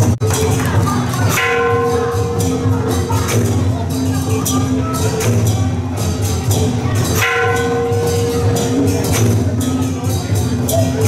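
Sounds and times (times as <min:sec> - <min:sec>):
low drumming: 0:00.0 - 0:11.0
struck metal instrument ringing: 0:01.3 - 0:11.0.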